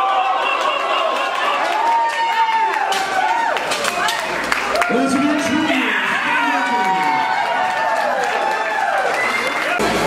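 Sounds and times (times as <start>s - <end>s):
group shouting and cheering: 0.0s - 10.0s.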